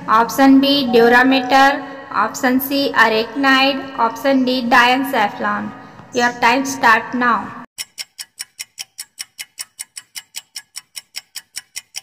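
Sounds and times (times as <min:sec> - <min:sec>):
clock ticking quickly: 0:07.8 - 0:12.0.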